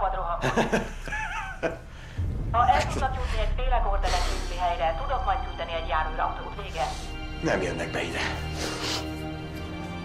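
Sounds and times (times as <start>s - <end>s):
background music: 0.0s - 10.0s
low rumble: 1.8s - 6.5s.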